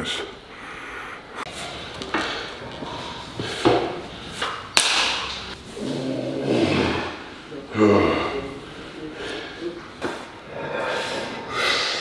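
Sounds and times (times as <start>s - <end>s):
sharp crack: 4.7s - 5.6s.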